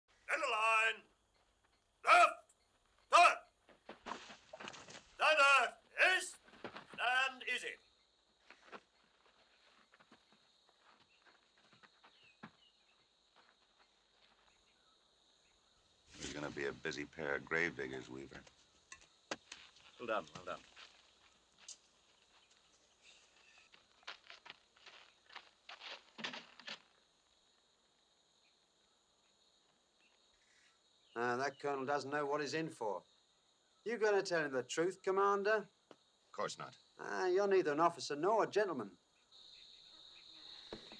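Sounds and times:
man calling out: 0.2 - 1.1, 2.0 - 2.5, 3.1 - 3.5, 5.2 - 6.4, 7.0 - 7.8
boots walking on dirt: 2.8 - 5.2, 6.3 - 7.3, 8.2 - 14.8, 18.3 - 27.2.

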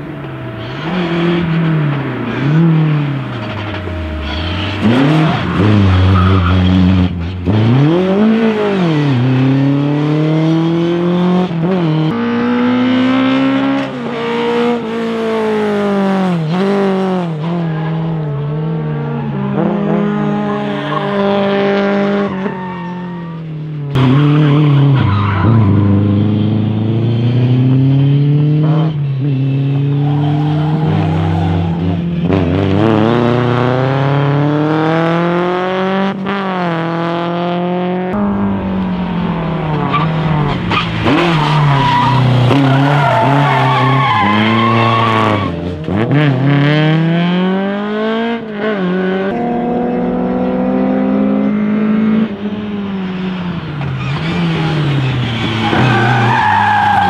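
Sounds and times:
rally car engines revving: 0.0 - 57.0
tyres squealing and skidding: 0.4 - 9.8, 17.4 - 27.4, 28.9 - 32.1, 38.6 - 45.7, 53.0 - 57.0.

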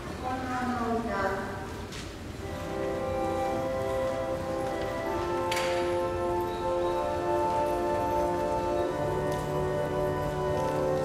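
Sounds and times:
room noise hiss: 0.0 - 11.0
church organ chords: 2.4 - 11.0.

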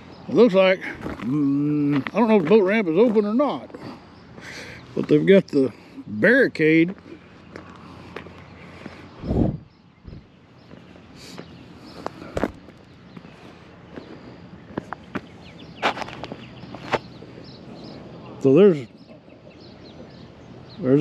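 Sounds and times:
footsteps on gravel: 0.8 - 5.4, 6.9 - 9.2, 10.1 - 17.2.

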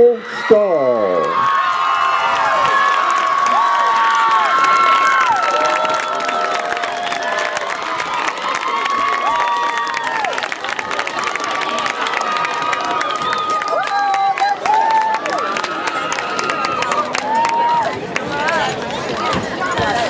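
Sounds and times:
high-pitched screams and whoops: 1.2 - 10.4, 11.8 - 18.0
crowd cheering and clapping: 1.2 - 20.0.

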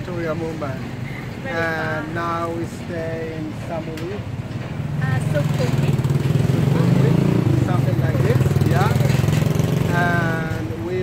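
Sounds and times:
voices: 0.0 - 11.0
vehicle engine running: 5.0 - 11.0.

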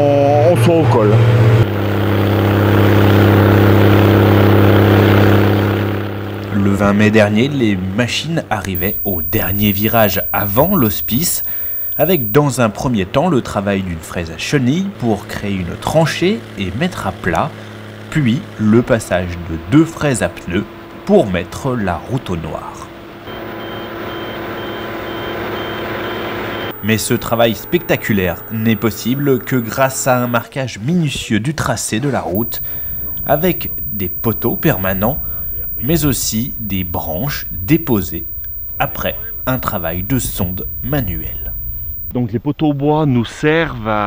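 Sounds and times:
reversing alarm beeping: 8.8 - 12.4, 23.3 - 30.4, 32.4 - 42.1
snow blower engine drone: 32.4 - 42.1.

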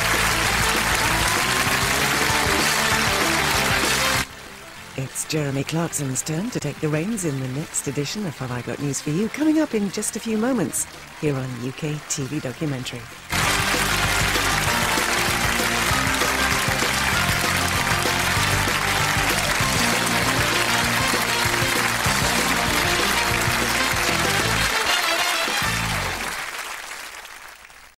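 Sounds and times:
studio audience applause: 0.0 - 4.3, 8.7 - 28.0
theme music: 0.0 - 26.6.

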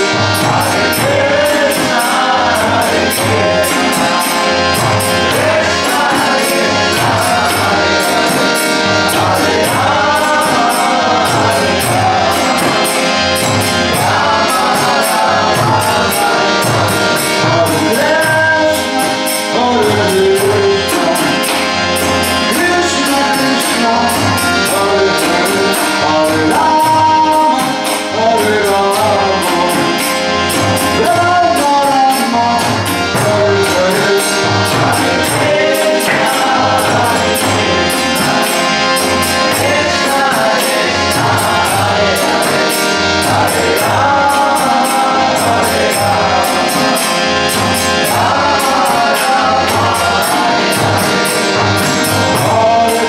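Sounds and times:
bright percussion beat: 0.0 - 53.0
harmonium chords: 0.0 - 53.0
voices singing: 0.0 - 53.0.

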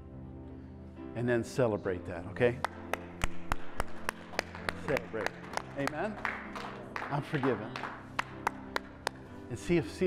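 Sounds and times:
man clapping hands: 2.6 - 9.2.

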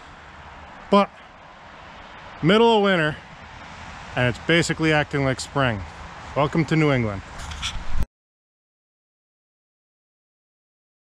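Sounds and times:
road traffic: 0.0 - 8.1.

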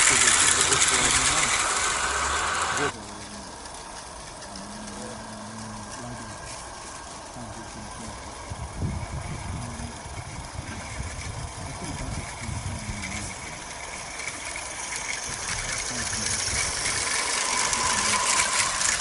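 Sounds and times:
steam locomotive chuffing: 0.0 - 19.0
wheels clicking on track: 0.0 - 19.0.

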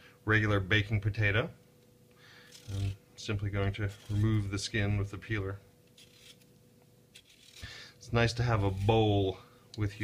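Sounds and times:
vegetable peeler scraping potato: 2.5 - 3.0, 3.6 - 4.8, 6.0 - 6.5, 7.1 - 9.4.

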